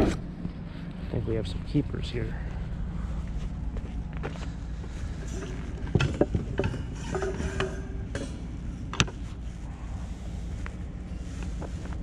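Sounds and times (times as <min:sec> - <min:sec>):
steady low rumble: 0:00.0 - 0:12.0
metal wire rack clattering: 0:05.1 - 0:09.0.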